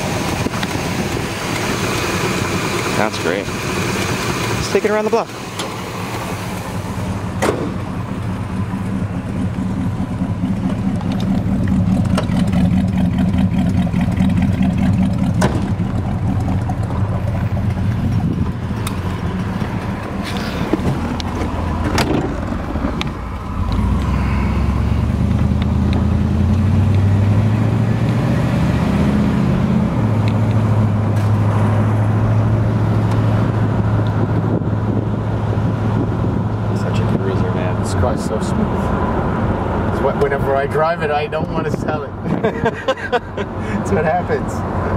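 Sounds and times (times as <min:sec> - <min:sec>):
car engine running: 0:00.0 - 0:44.9
sharp engine knocks: 0:07.3 - 0:08.0, 0:11.0 - 0:13.0, 0:14.9 - 0:23.2.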